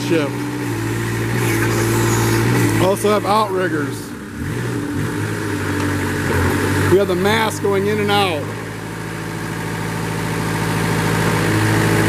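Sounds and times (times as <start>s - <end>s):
diesel engine running: 0.0s - 12.0s
higher hydraulic tone: 1.4s - 3.0s.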